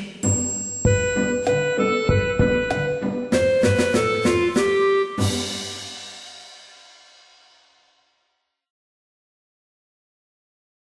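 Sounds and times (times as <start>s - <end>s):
music chord ringing out: 0.9s - 6.3s.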